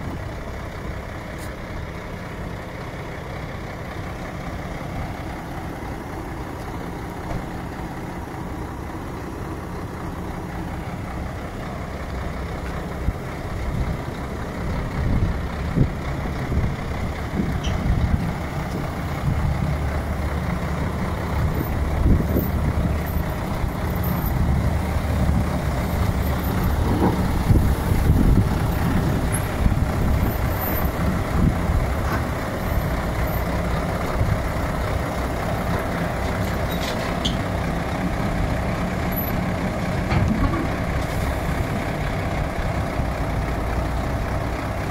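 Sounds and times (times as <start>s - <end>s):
diesel truck engine rumbling: 0.0s - 44.9s.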